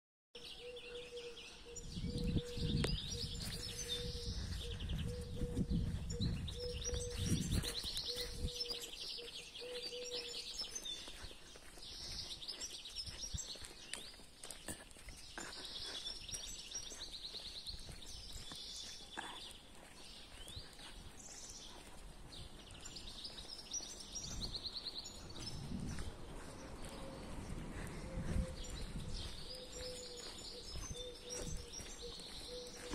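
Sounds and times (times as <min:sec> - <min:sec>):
small birds chirping: 0:00.4 - 0:32.9
low rumbling on microphone: 0:01.8 - 0:07.7.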